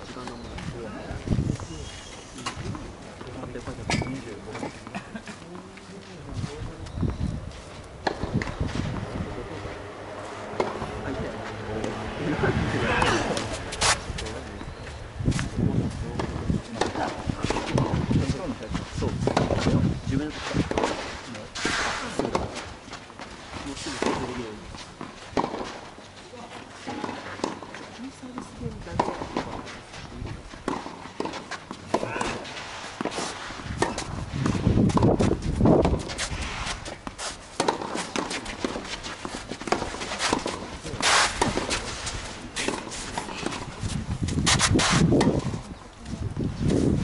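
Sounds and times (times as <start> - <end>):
tennis ball struck with rackets: 8.0 - 9.1, 10.6 - 10.8, 37.0 - 38.8, 42.6 - 45.6.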